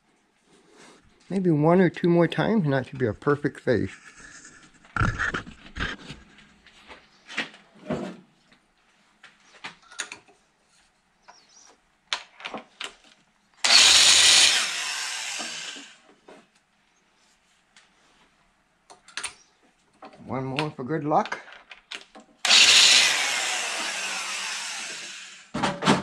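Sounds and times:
electric valve seat grinder grinding: 13.6s - 16.0s, 22.4s - 25.6s
knocks and clicks of handling tools: 25.5s - 26.0s.

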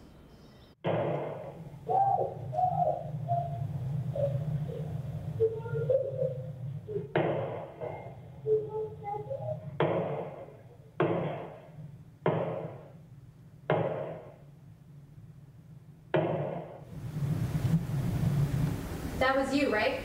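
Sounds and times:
steady hum: 0.0s - 20.0s
raised voices: 1.3s - 9.8s.

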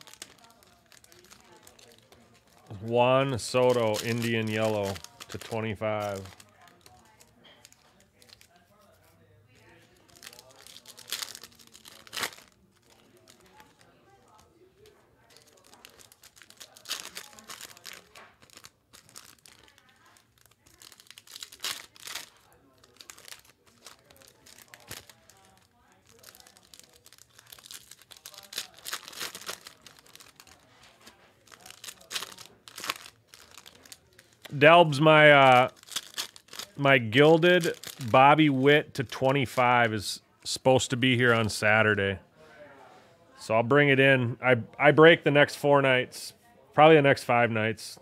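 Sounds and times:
foil wrappers tearing and crinkling: 0.0s - 38.6s.

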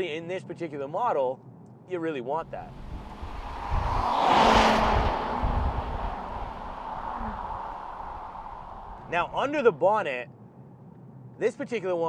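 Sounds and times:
car passing by: 2.4s - 9.4s.

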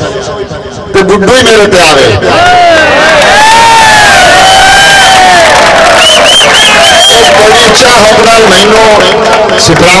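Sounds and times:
crowd of men cheering: 2.3s - 10.0s.

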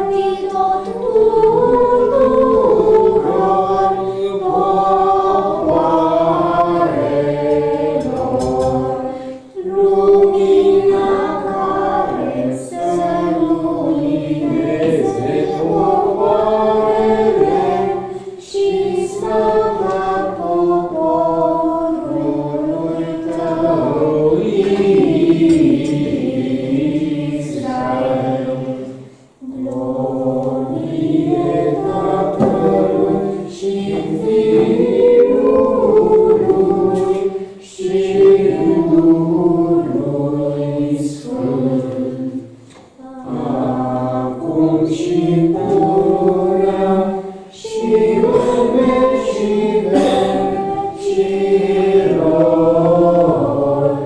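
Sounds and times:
group singing a hymn unaccompanied: 0.0s - 54.0s.

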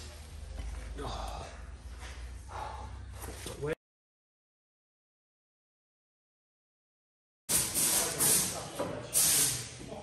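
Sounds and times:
short bursts of hissing: 7.5s - 9.7s.

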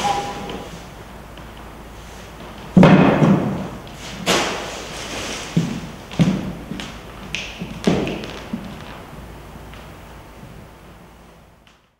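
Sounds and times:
short sharp scrape: 0.0s - 0.9s.

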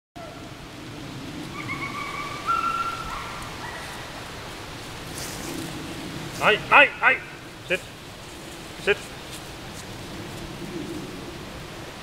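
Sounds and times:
background hiss: 0.2s - 12.0s.

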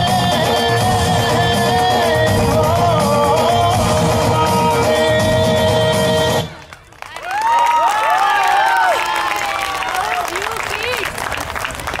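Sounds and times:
dance music: 0.0s - 6.6s
audience clapping: 6.4s - 12.0s.

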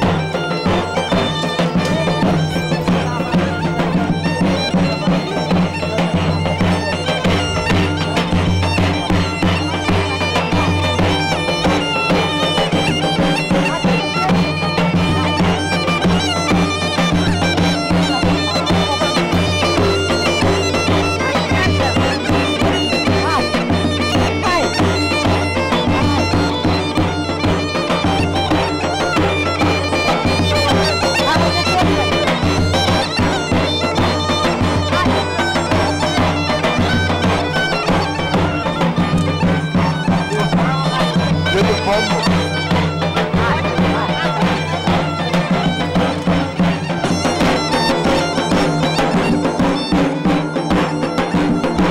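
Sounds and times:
bagpipe folk melody with drone: 0.0s - 51.9s
drum beating: 0.0s - 51.9s.

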